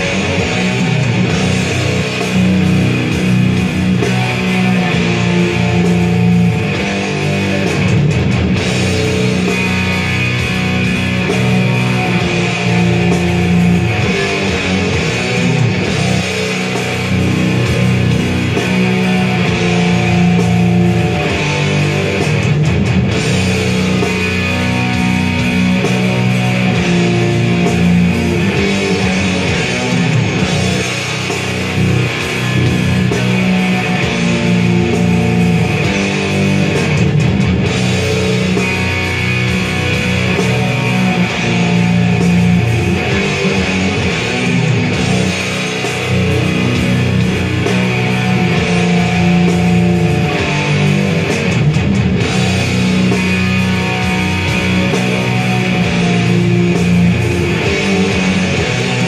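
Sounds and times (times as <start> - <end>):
electric guitar metal riffs: 0.0 - 59.0.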